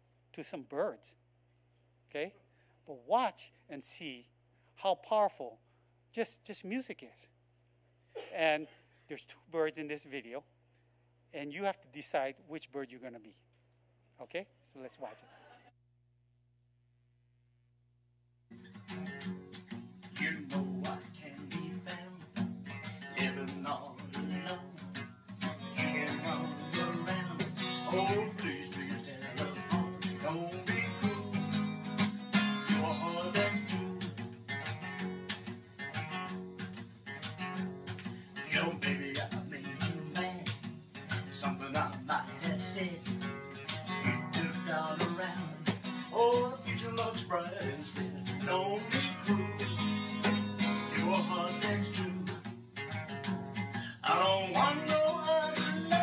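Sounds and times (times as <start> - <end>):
acoustic guitar strumming: 18.5 - 56.0.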